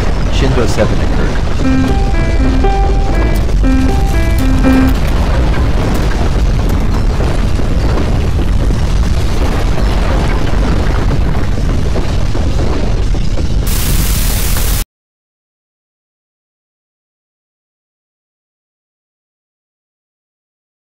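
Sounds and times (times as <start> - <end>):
electronic alert chime: 1.6 - 5.1.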